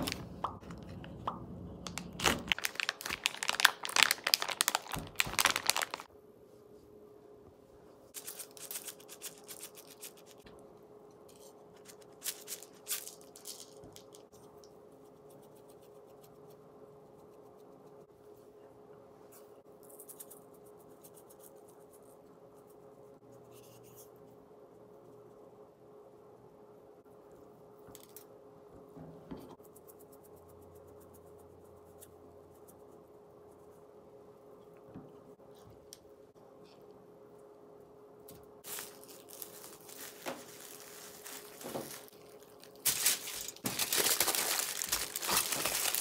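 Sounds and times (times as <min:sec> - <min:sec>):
faint steady hum: 0:00.0 - 0:46.0
plastic bag crinkling: 0:01.8 - 0:06.1, 0:11.9 - 0:14.2, 0:38.6 - 0:46.0
spice shaker rattling: 0:08.2 - 0:10.4.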